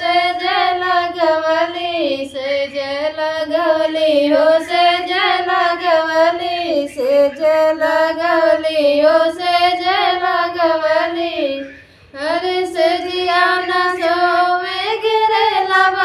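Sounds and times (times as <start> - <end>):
women singing without instruments: 0.0 - 16.0.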